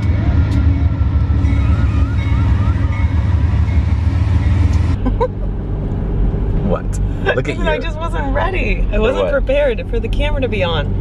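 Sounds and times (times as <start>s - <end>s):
diesel locomotive rumble: 0.0s - 11.0s
road noise inside moving car: 3.6s - 11.0s.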